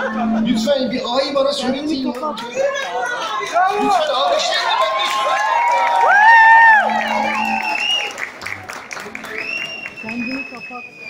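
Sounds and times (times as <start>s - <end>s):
audience clapping: 2.0s - 11.0s.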